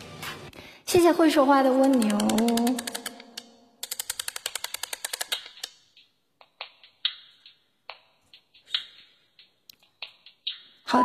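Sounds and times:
sharp clicks: 1.6 - 10.7.

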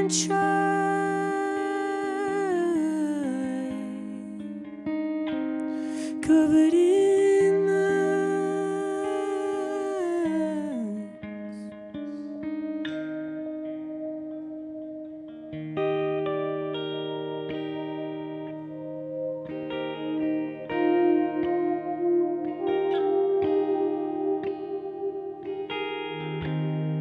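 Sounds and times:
electric guitar chords: 0.0 - 27.0
electric piano chords: 15.0 - 27.0.

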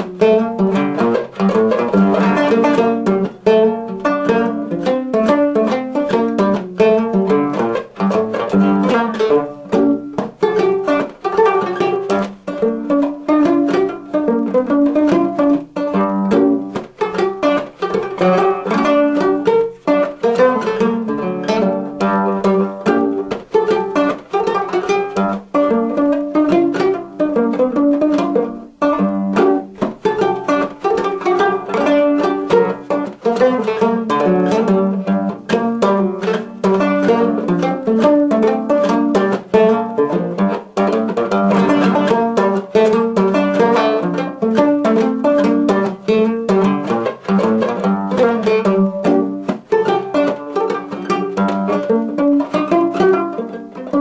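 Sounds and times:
banjo playing a reel: 0.0 - 54.0.

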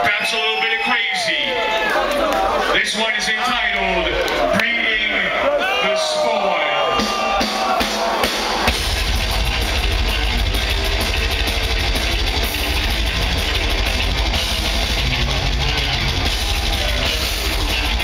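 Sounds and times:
distorted guitars: 6.4 - 18.0
fast drumming: 6.4 - 18.0
bass guitar: 8.1 - 18.0.

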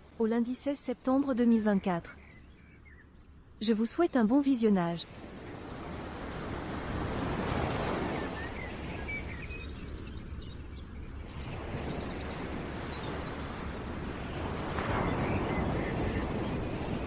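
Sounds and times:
bird chirps and trills: 0.3 - 5.6, 7.6 - 13.6.

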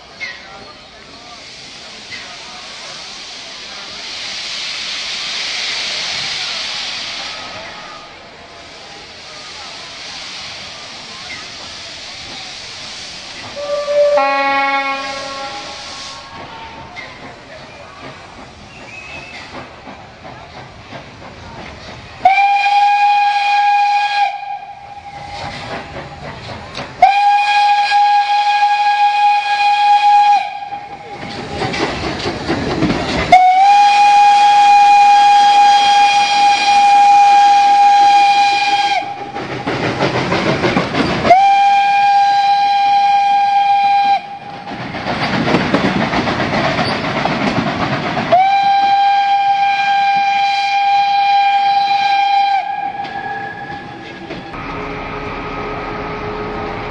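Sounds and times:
steam hissing: 0.0 - 56.9
train running noise: 0.0 - 56.9
steam locomotive whistle: 13.5 - 16.9, 22.2 - 25.5, 27.0 - 31.1, 33.3 - 39.4, 41.2 - 44.6, 48.3 - 54.2.

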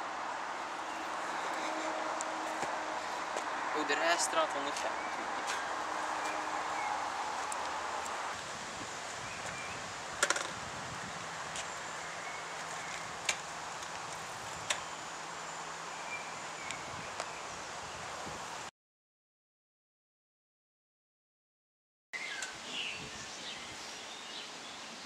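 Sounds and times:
breeze and rustling leaves: 0.0 - 18.7, 22.2 - 25.0.

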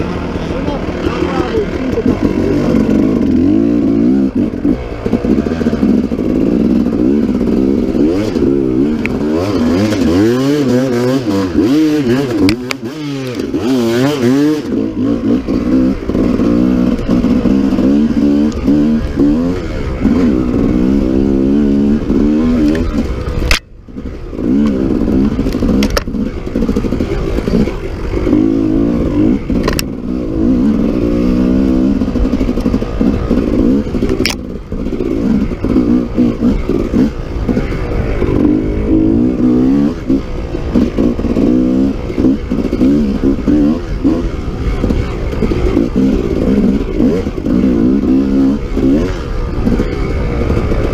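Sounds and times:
dirt bike engine revving: 0.0 - 50.9.

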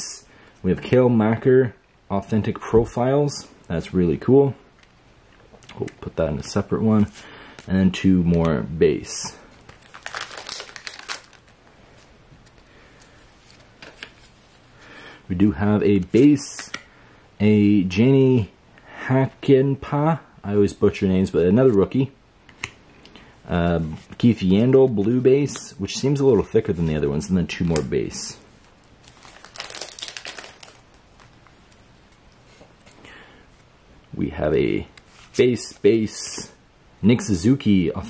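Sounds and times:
faint card rustling: 9.2 - 14.7, 27.5 - 33.7.

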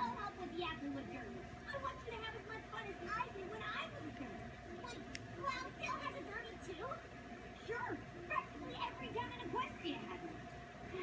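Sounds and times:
cartoon voices chattering: 0.0 - 11.0
faint steady hum: 0.0 - 11.0.

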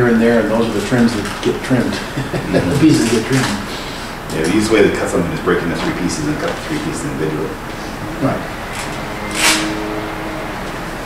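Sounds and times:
faint hum: 0.0 - 11.0
steady background hiss: 0.0 - 11.0.

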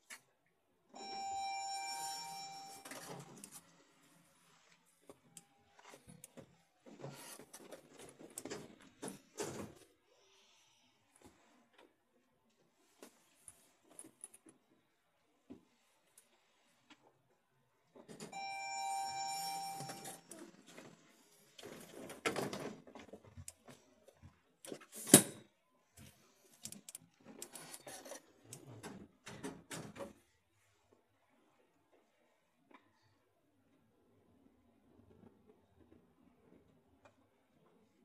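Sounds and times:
elevator electronic ding: 1.0 - 2.9, 18.4 - 20.2.

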